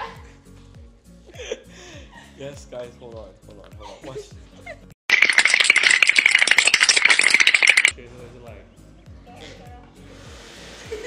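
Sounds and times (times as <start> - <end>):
background music with bass: 0.0 - 4.9, 7.9 - 11.0
rapid clicking sound effect: 5.1 - 7.9.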